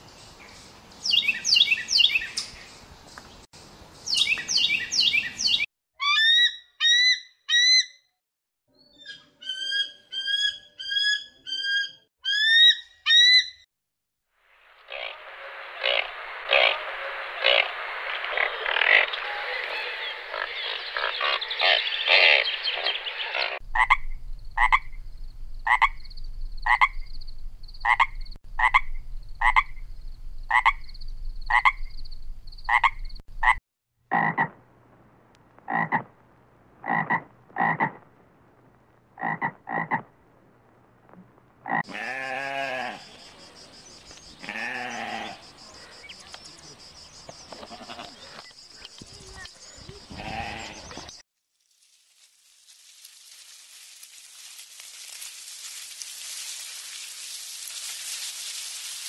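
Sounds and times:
frogs croaking: 14.8 - 34.6, 35.7 - 36.1, 36.8 - 38.0, 39.2 - 40.1, 41.6 - 51.0.

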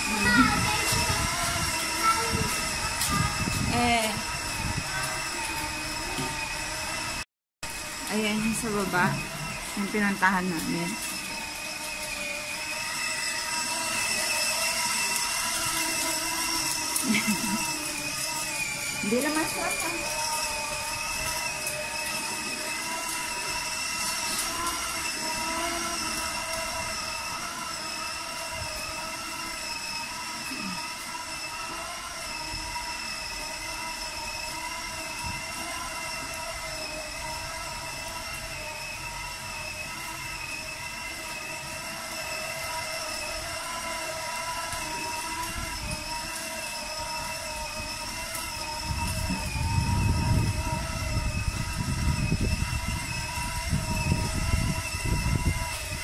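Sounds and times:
toy motorcycle motor whine: 0.0 - 56.0.

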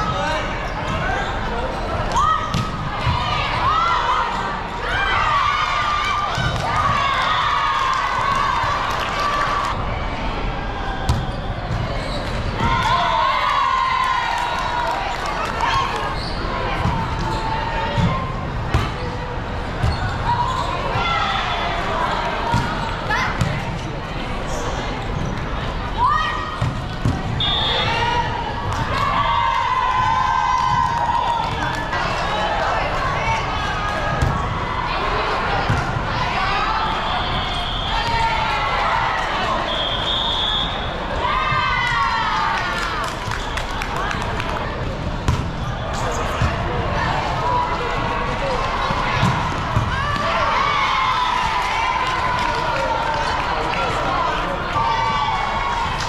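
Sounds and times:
players calling and shouting: 0.0 - 42.9
hubbub of voices: 0.0 - 56.0
volleyballs hit and bouncing: 16.7 - 19.1, 26.5 - 27.4, 44.3 - 46.9.

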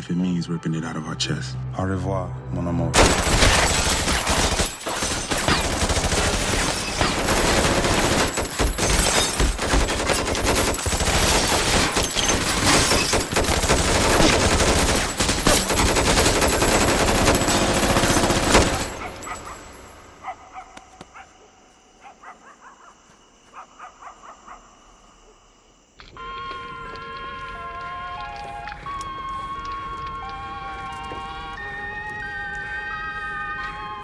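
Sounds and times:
rapid gunfire: 3.0 - 19.3.

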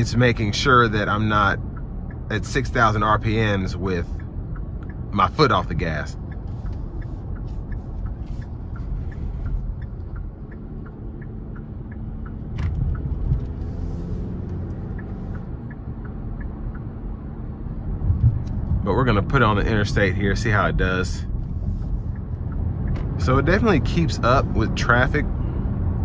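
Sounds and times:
engine and road rumble: 0.0 - 26.0.

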